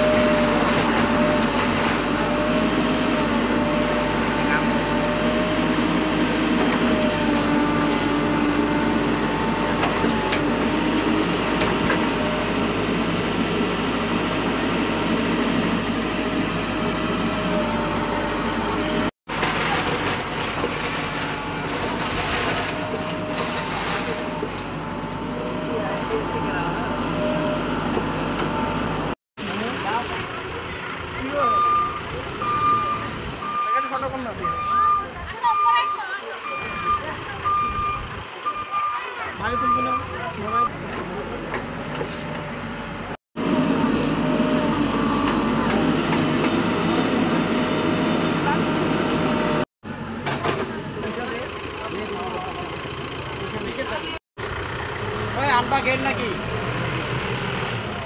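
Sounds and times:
diesel engine running under load: 0.0s - 58.0s
reversing alarm beeping: 31.2s - 40.7s.

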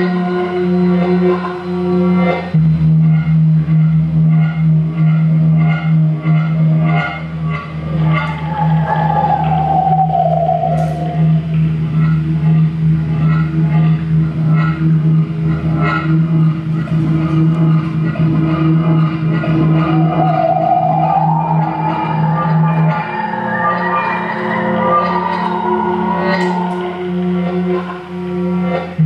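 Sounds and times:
low electronic drone hum: 0.0s - 29.0s
pulsing electronic texture: 7.4s - 13.2s, 16.2s - 28.7s
gliding tone falling in pitch: 7.6s - 12.5s, 19.3s - 28.7s.

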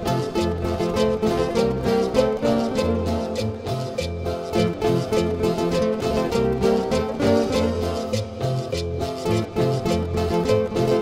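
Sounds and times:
cumbia band music: 0.0s - 11.0s.

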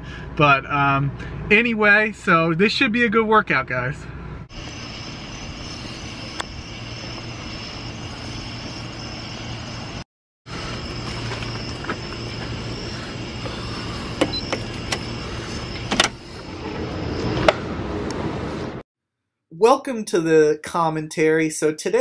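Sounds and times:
mechanical hum with high whine: 4.5s - 18.8s.

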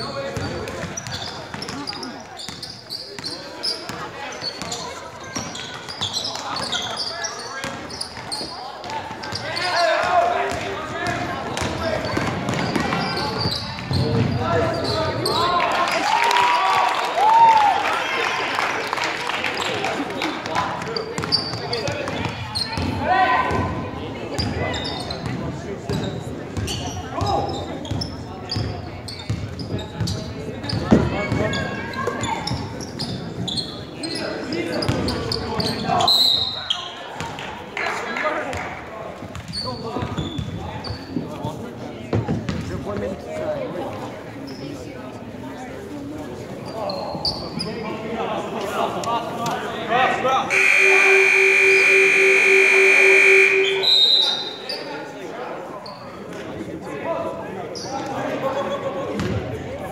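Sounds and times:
players calling out: 50.4s - 54.9s.

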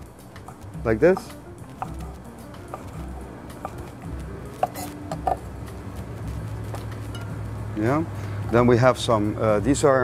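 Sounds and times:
faint background music: 0.0s - 10.0s
knife tapping on wooden cutting board: 0.4s - 2.9s, 4.6s - 5.5s.

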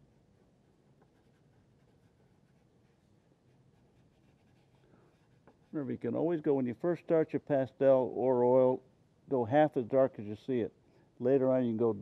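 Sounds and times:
pastel scratching on paper: 0.1s - 5.8s.

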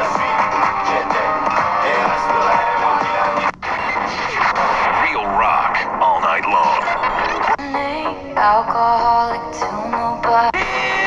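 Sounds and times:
music with singing: 0.0s - 4.5s, 6.4s - 11.0s
radio station talk: 3.4s - 7.6s.

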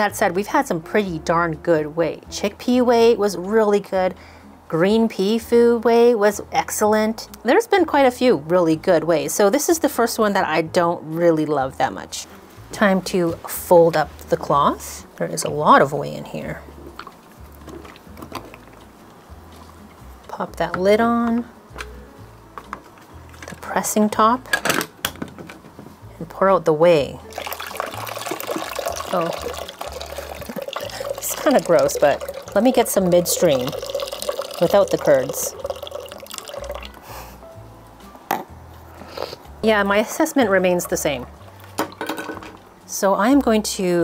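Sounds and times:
soft background music: 0.0s - 44.0s
liquid trickling into a pot: 27.3s - 37.0s.

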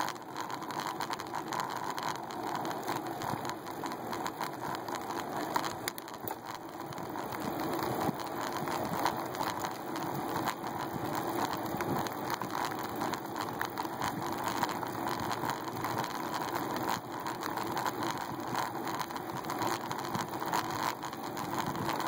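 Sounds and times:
bicycle tyres on asphalt: 0.0s - 22.0s.

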